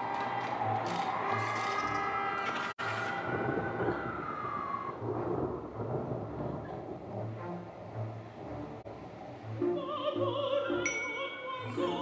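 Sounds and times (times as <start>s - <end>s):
rain: 0.0s - 10.8s
thunder rumbling: 2.8s - 9.9s.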